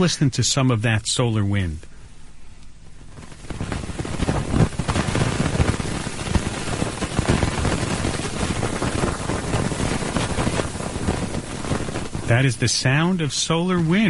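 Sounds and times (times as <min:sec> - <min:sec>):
dense rushing crackling noise: 0:02.8 - 0:14.0.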